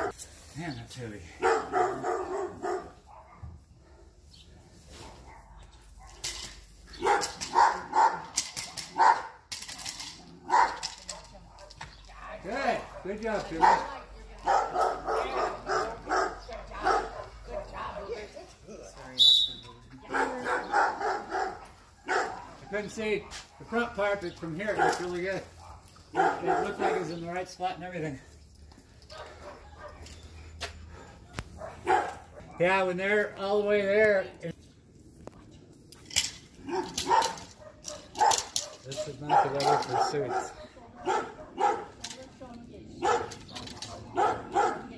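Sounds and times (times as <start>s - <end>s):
dog barking: 1.4s - 4.1s, 5.1s - 6.2s, 7.0s - 8.3s, 8.9s - 9.4s, 10.4s - 18.5s, 20.0s - 24.0s, 24.7s - 27.2s, 29.1s - 30.1s, 31.0s - 32.6s, 36.6s - 42.0s, 43.0s - 44.9s.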